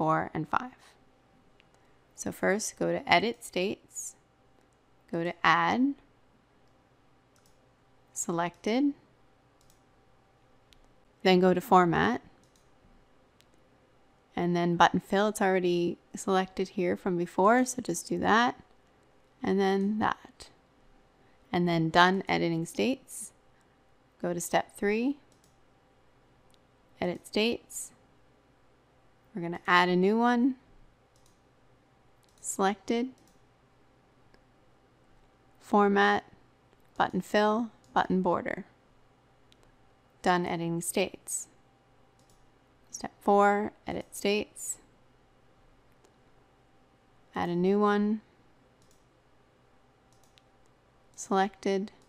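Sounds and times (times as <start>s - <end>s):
computer mouse clicks: 6.6s - 7.6s, 9.6s - 9.9s, 12.4s - 12.8s, 25.3s - 25.6s, 31.1s - 31.5s, 32.2s - 32.5s, 33.1s - 33.5s, 42.2s - 42.5s, 48.8s - 49.1s, 50.1s - 51.2s.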